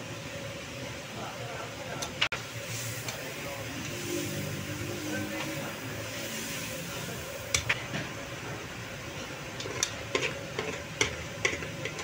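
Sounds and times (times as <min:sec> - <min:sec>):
street traffic noise: 0:02.4 - 0:12.0.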